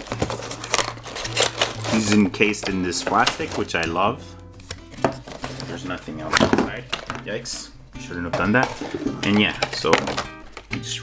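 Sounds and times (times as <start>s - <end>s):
cardboard rubbing: 0.0s - 3.7s, 4.7s - 7.2s, 8.3s - 10.6s
plastic packaging crinkling: 0.0s - 3.9s, 4.8s - 7.3s, 8.5s - 10.7s.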